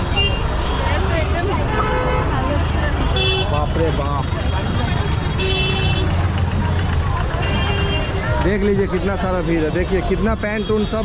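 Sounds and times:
vehicle engine rumbling: 0.0s - 11.0s
car horn: 1.6s - 2.4s, 3.1s - 4.1s, 5.4s - 6.2s.

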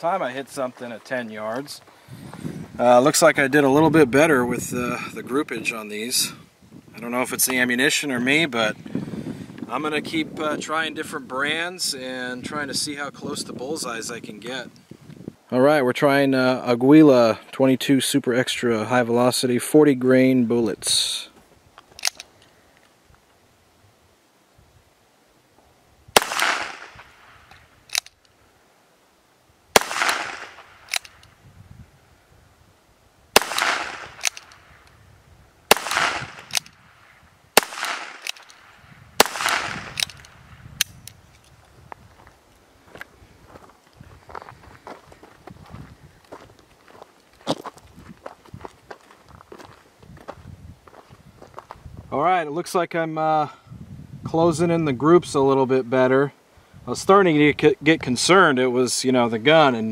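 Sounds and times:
revolver clicks and handling: 21.8s - 23.0s, 27.5s - 28.4s, 30.0s - 31.4s, 33.6s - 35.0s, 36.0s - 36.8s, 37.7s - 38.6s, 39.3s - 41.7s.

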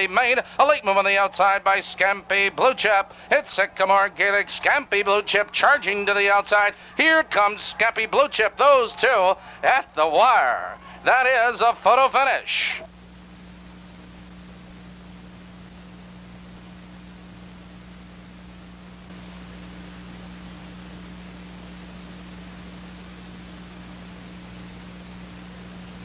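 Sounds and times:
low electrical hum: 0.0s - 26.0s
tape hiss: 0.0s - 26.0s.

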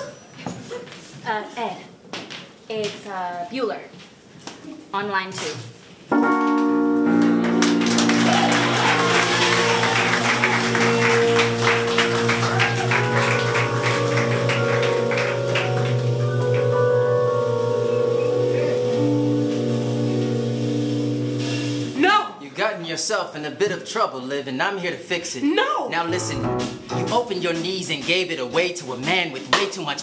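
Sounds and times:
instrumental band music: 6.1s - 22.2s, 26.0s - 30.0s
fast drumming: 26.1s - 30.0s.

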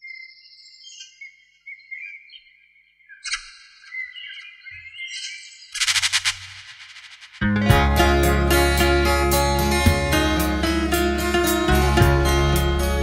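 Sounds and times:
birds singing: 0.0s - 6.0s
rapid rattling noise: 5.8s - 7.5s.

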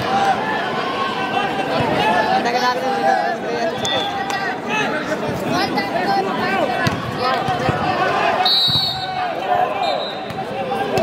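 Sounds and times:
crowd shouting and chattering: 0.0s - 11.0s
referee's whistle: 3.7s - 4.3s, 8.4s - 10.3s
volleyball bouncing on court: 6.8s - 7.9s, 8.6s - 9.0s, 10.2s - 11.0s.

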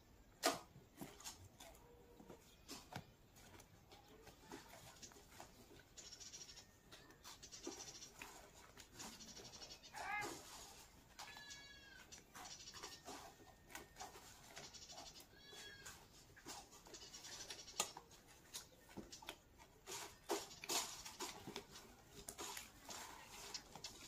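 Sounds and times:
goat kids bleating: 9.9s - 12.3s, 15.1s - 16.3s.

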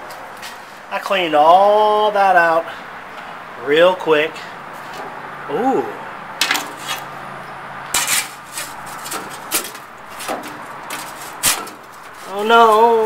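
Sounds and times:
metal scraping on grate: 6.4s - 7.3s, 7.9s - 13.0s.

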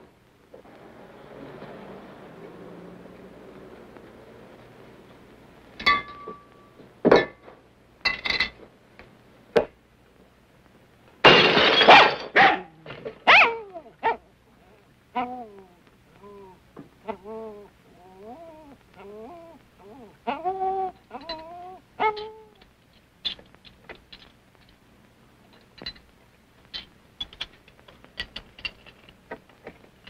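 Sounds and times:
sharp knocks and clinks: 5.8s - 6.5s
dog barking: 11.9s - 14.2s.

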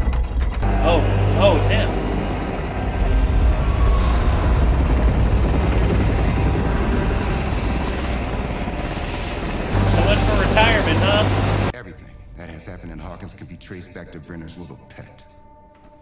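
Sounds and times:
helicopter rotor and engine: 0.2s - 11.7s.

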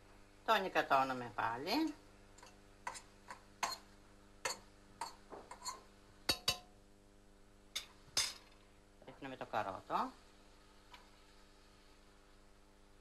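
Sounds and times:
spoon clinking against metal pot: 4.4s - 6.7s.

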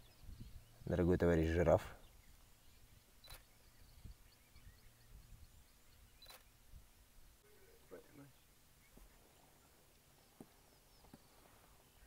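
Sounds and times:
faint sharp clicks: 3.2s - 3.5s, 6.2s - 6.5s.

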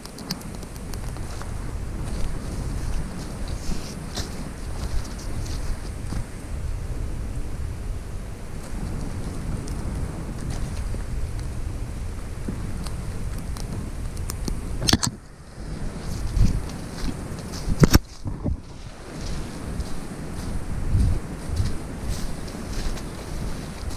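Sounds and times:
rustling leaves and brush: 0.0s - 23.9s
sharp crackle: 0.0s - 23.9s
wind rumble on microphone: 0.0s - 23.9s.

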